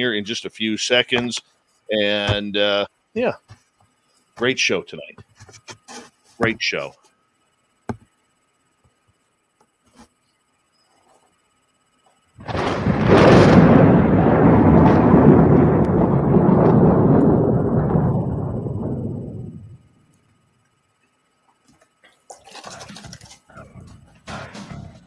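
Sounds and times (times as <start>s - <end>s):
loud thunder-like rumble: 12.4s - 20.1s.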